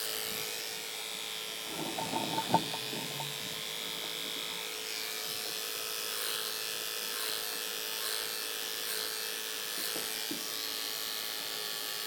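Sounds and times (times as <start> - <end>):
electric hair clippers humming: 0.0 - 1.6, 2.9 - 12.0.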